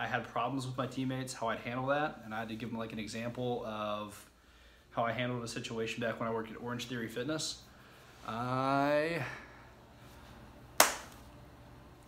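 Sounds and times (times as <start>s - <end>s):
hand smacking: 10.8s - 11.2s.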